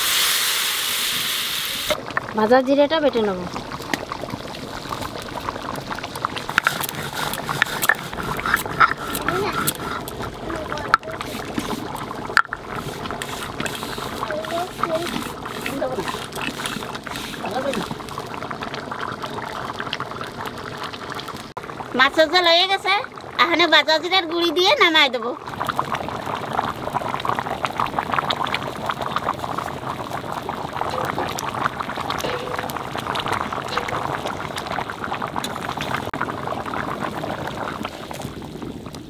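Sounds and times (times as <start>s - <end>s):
stone scraping on stone: 6.5s - 10.2s.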